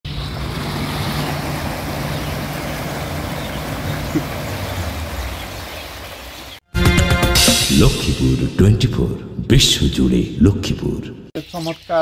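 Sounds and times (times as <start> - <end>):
low machine hum: 0.1 - 5.7
bubbling churning water: 0.1 - 6.6.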